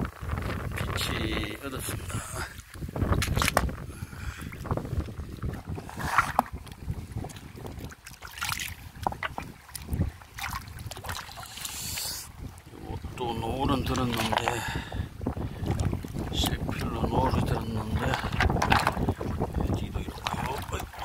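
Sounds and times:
wind rumble on microphone: 0.0s - 21.0s
river water splashing: 4.4s - 21.0s.

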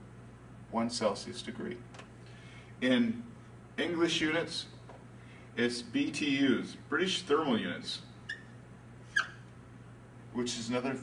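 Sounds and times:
marker squeaking on whiteboard: 8.2s - 9.5s.

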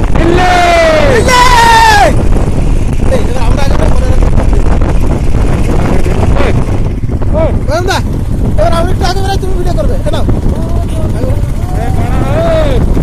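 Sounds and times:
wind rushing over microphone: 0.0s - 13.0s
person shouting: 0.1s - 2.2s, 11.6s - 12.8s
motorcycle engine rumble: 2.0s - 13.0s.

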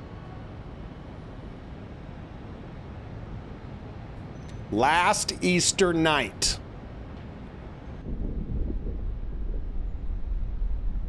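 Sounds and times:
low rumbling cinematic drone: 8.0s - 11.0s.

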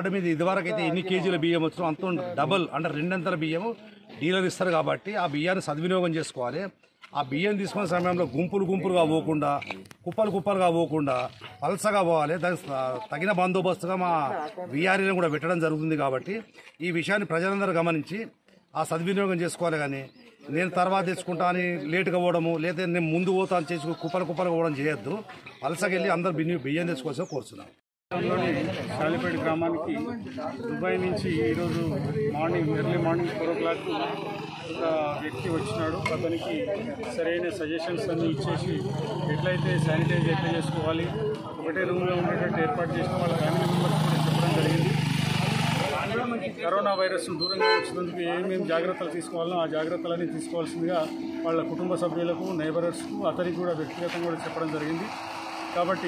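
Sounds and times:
man speaking: 0.0s - 45.1s, 45.7s - 56.0s
voices: 0.0s - 56.0s
vehicle engine running: 38.5s - 46.2s, 51.1s - 56.0s.

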